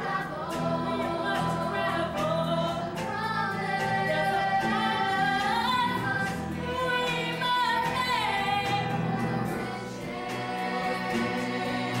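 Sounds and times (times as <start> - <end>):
instrumental accompaniment: 0.0 - 12.0.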